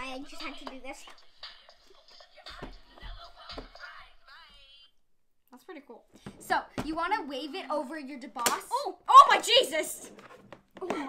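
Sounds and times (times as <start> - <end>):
hip-hop pop song from small speaker: 0.0 - 5.0.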